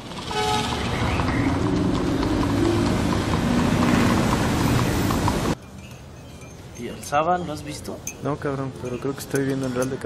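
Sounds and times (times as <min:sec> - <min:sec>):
bus engine rumbling: 0:00.0 - 0:10.0
city street traffic: 0:00.0 - 0:10.0
horse hooves clopping: 0:00.0 - 0:10.0.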